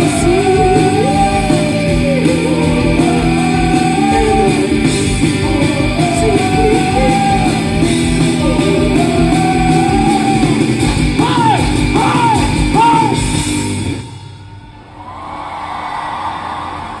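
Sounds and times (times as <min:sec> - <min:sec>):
crowd cheering: 0:00.0 - 0:13.4, 0:14.0 - 0:17.0
live rock band: 0:00.0 - 0:14.6.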